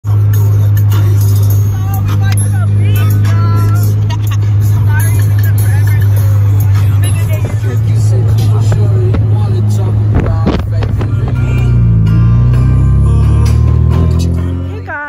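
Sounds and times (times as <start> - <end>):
music: 0.0 - 15.0
voices: 0.6 - 15.0
wind and road noise rumble: 1.0 - 14.9.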